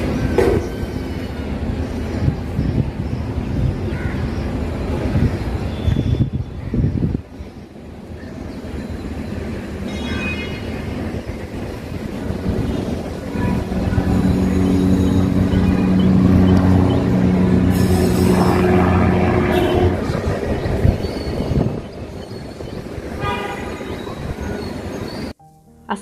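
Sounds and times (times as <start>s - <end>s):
helicopter engine and rotor hum: 11.2s - 22.2s
loud low rumble: 11.7s - 21.8s.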